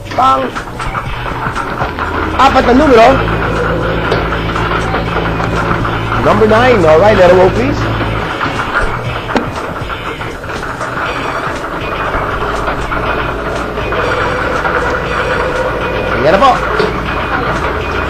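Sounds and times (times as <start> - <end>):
air blower rushing: 0.0 - 18.0
bingo balls tumbling and clicking: 0.5 - 17.8.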